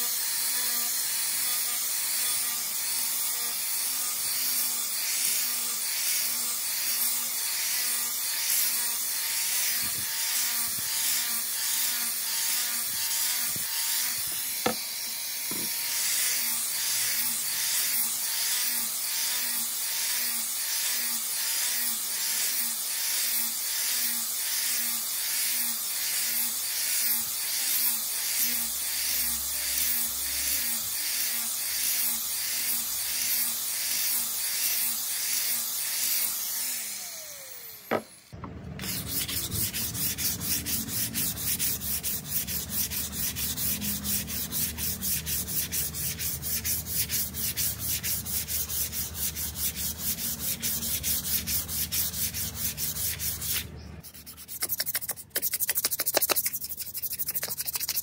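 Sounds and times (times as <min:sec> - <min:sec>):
power sander whirring on wood: 0:00.0 - 0:53.6
sandpaper rubbed on wood by hand: 0:15.5 - 0:36.3, 0:38.8 - 0:58.0.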